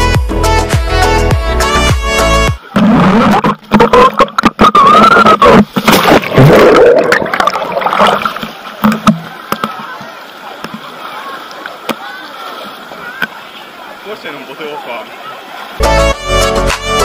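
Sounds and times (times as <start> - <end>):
background music: 0.0 - 2.6, 15.8 - 17.0
underwater splashing and bubbling: 2.6 - 11.9
water knocking on camera housing: 8.8 - 9.8.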